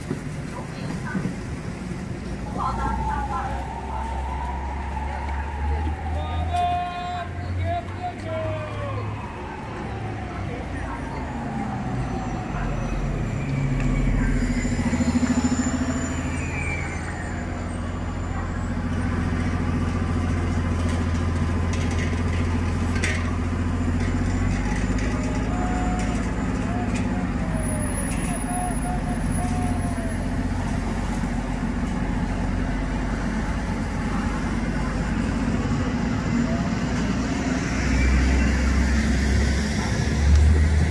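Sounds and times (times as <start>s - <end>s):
city bus engine drone: 0.0s - 40.9s
street traffic: 0.0s - 40.9s.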